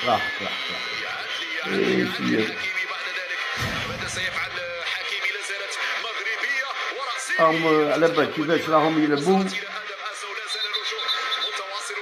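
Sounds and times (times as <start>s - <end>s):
tinny speech through small speaker: 1.6s - 2.6s.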